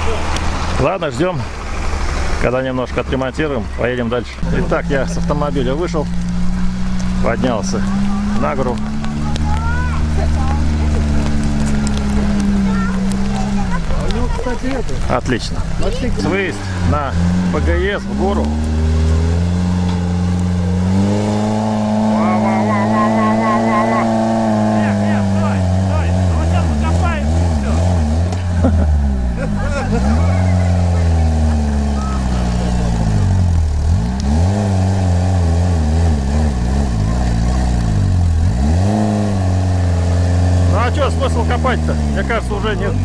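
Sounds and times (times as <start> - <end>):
buggy engine revving hard: 0.0 - 43.0
tyres digging into dirt: 4.5 - 22.2.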